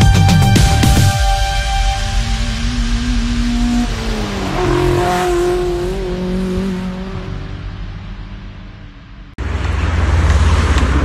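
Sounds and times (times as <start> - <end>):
motor vehicle passing: 2.0 - 11.0.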